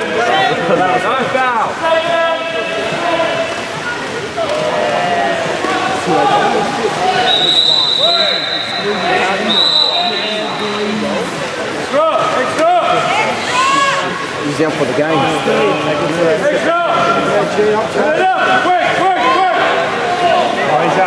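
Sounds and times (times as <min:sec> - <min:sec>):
spectators talking and shouting: 0:00.0 - 0:21.0
referee's whistle blasts: 0:07.2 - 0:10.8.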